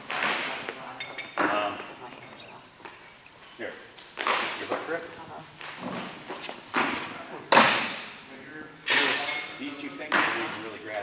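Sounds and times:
people talking: 8.3 - 11.0.

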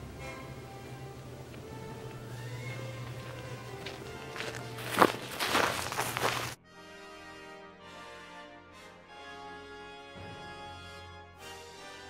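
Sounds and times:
background music: 0.0 - 12.0
footsteps on pine needles: 2.1 - 6.6.

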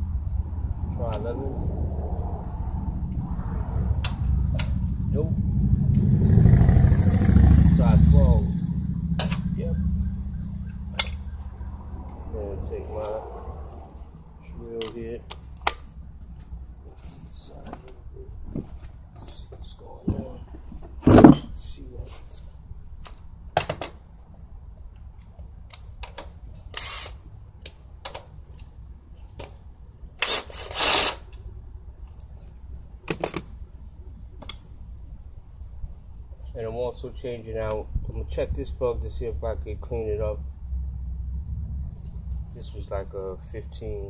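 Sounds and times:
tools clicking and clinking: 11.0 - 11.2
cordless drill bursts: 26.8 - 27.2, 30.2 - 31.3.

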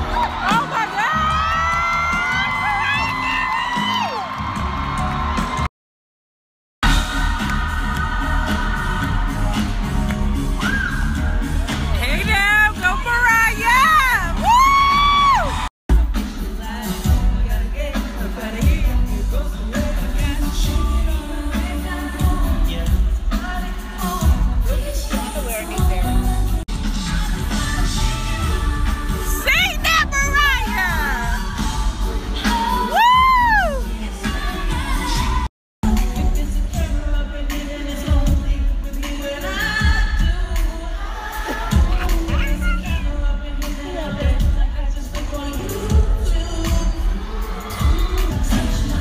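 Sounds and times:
audience whooping and cheering: 0.0 - 5.7, 13.2 - 15.7, 32.4 - 35.5
live pop band music: 0.0 - 5.7, 6.8 - 49.0
woman singing along: 27.4 - 35.5, 39.0 - 49.0.

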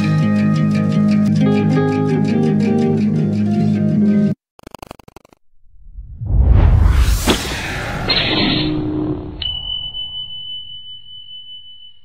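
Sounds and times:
cinematic hit with noisy wash: 6.8 - 9.4.

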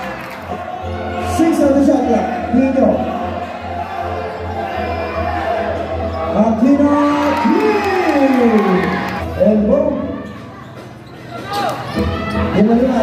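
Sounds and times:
crowd noise: 0.0 - 13.0
music: 0.0 - 13.0.

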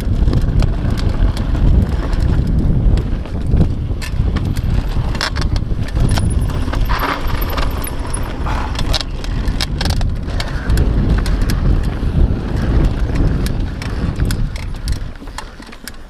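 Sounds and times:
bike clicks and rattles: 0.0 - 16.0
tyres on dirt: 0.0 - 16.0
wind buffeting microphone: 0.0 - 16.0.

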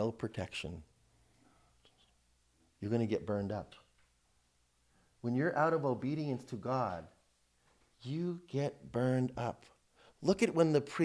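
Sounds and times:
man speaking: 0.0 - 0.9, 2.8 - 4.0, 5.2 - 7.2, 8.0 - 11.0.

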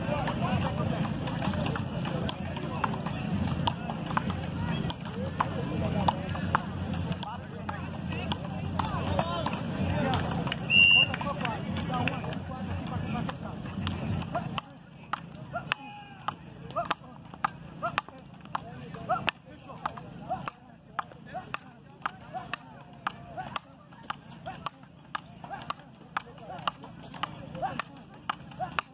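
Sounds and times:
chatter of voices: 0.0 - 28.9
wooden paddles hitting ball: 0.0 - 28.9.

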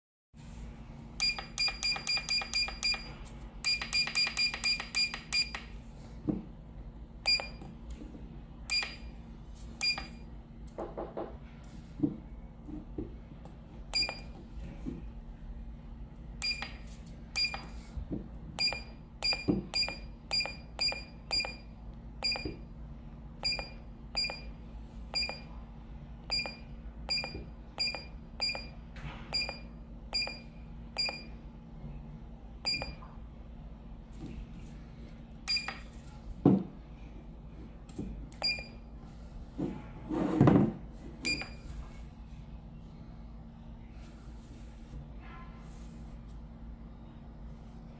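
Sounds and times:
electronic key-press beeps: 1.2 - 5.7, 7.2 - 7.7, 8.7 - 9.1, 9.8 - 10.2, 13.9 - 14.3, 16.4 - 16.8, 17.4 - 17.7, 18.6 - 22.6, 23.4 - 24.5, 25.2 - 25.5, 26.3 - 31.3, 32.6 - 33.0, 35.5 - 35.9, 38.4 - 38.8, 41.2 - 41.6.

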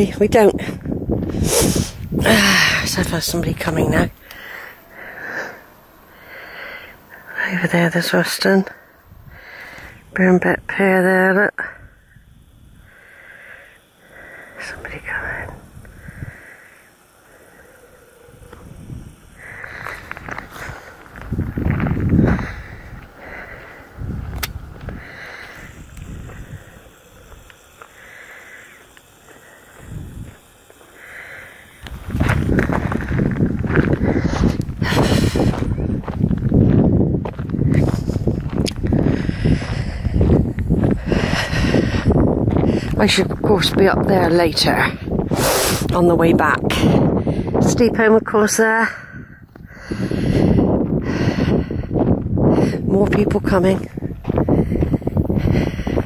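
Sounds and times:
wind noise on microphone: 0.0 - 6.3, 6.9 - 10.9, 11.6 - 13.1, 14.7 - 16.5, 17.9 - 27.8, 29.6 - 30.7, 31.7 - 56.0.

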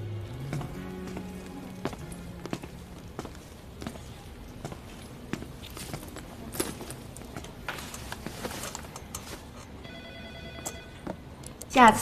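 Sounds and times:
faint electronic ringing trill: 9.8 - 11.0.

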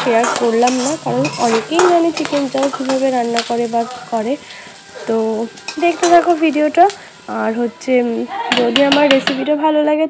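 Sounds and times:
spatula scraping a steel wok: 0.0 - 3.1
vegetables sizzling in a wok: 0.0 - 10.0
spatula clicking against pan: 8.5 - 9.4.

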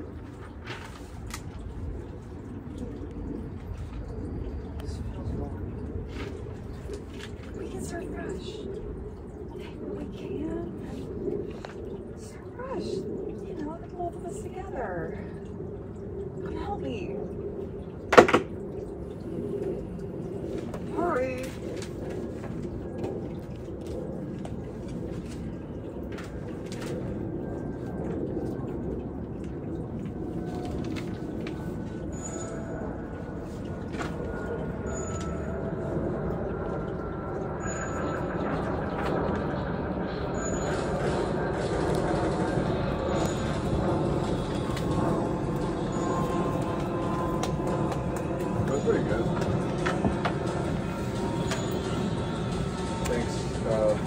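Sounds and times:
steady low rumble: 0.0 - 54.0.

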